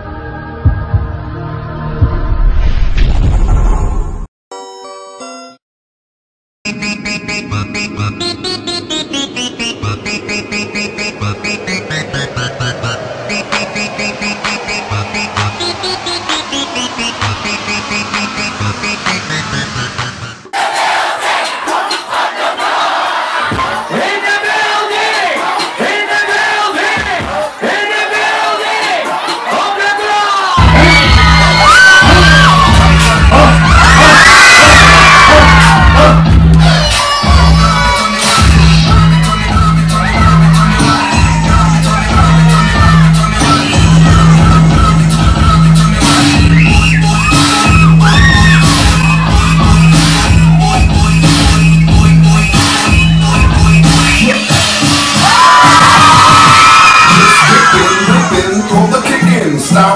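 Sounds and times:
electronic music with fast beat: 6.7s - 27.7s, 30.4s - 59.9s
heavy bass beat: 9.8s - 20.5s, 23.4s - 24.2s, 24.9s - 27.7s, 30.6s - 56.7s
crowd shouting and cheering: 11.0s - 19.4s, 20.4s - 59.9s.

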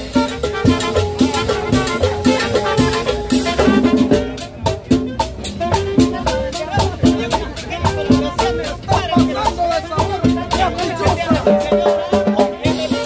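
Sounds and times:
live latin dance band: 0.0s - 13.0s.

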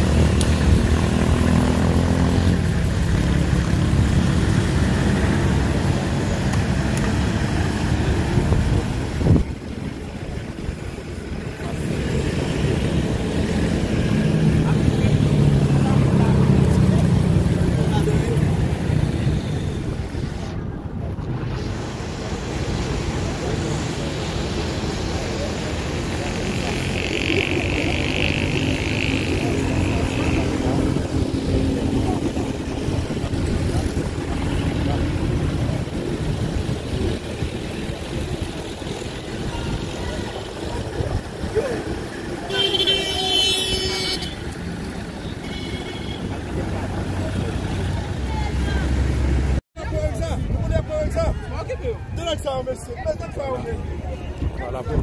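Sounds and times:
vehicle engines running: 0.0s - 55.0s
vehicle horn: 42.5s - 44.5s, 45.2s - 46.3s.

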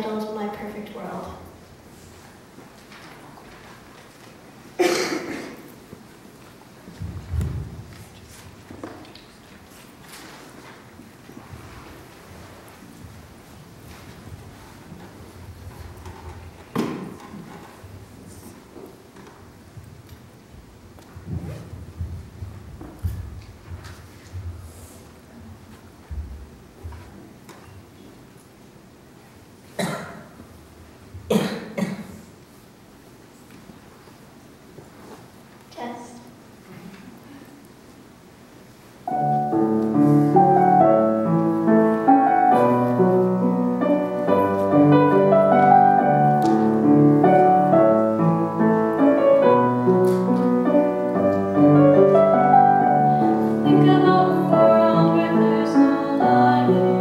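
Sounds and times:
person coughing: 4.8s - 5.7s, 29.8s - 30.4s, 31.3s - 32.2s
solo grand piano: 39.0s - 57.0s.

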